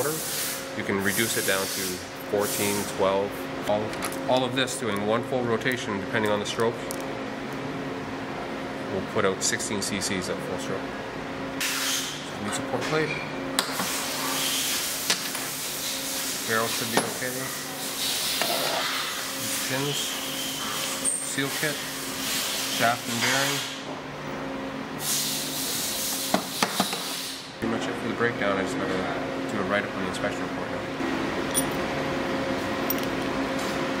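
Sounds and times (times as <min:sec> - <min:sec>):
machine hum and hiss: 0:00.0 - 0:34.0.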